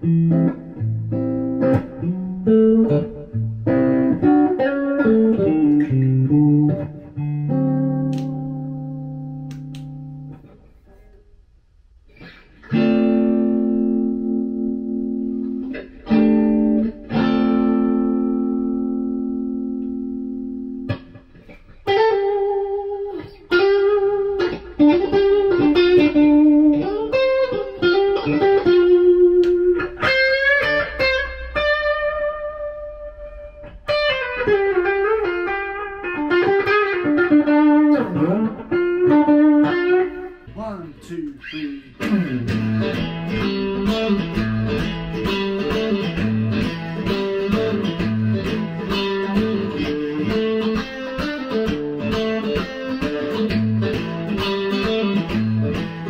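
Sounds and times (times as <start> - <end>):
electric guitar blues lead: 0.0 - 11.2, 12.1 - 56.0.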